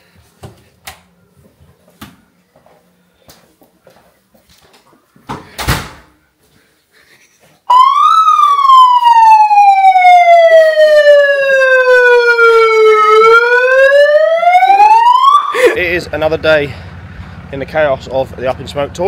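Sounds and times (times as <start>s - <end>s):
electronic siren wail: 7.7s - 15.8s.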